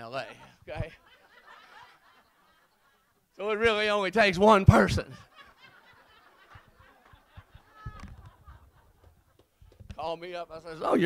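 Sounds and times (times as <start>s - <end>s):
audience laughing: 0.0s - 3.3s, 4.7s - 9.6s.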